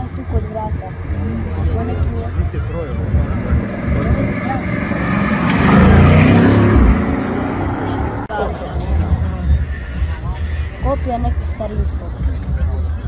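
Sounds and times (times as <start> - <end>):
car engine accelerating: 0.0 - 9.8
crowd voices: 0.0 - 13.0.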